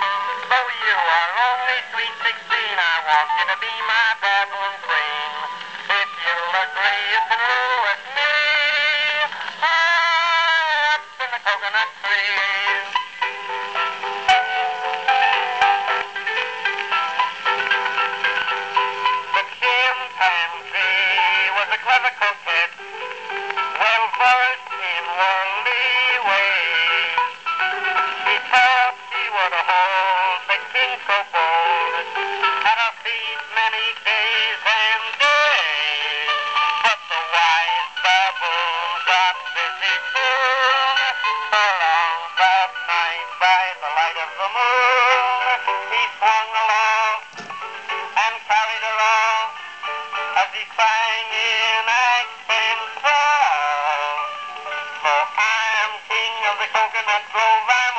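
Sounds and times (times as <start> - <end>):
man singing tenor: 0.0 - 13.0, 19.3 - 47.3, 48.2 - 49.6, 50.2 - 57.9
instrumental accompaniment: 0.0 - 57.9.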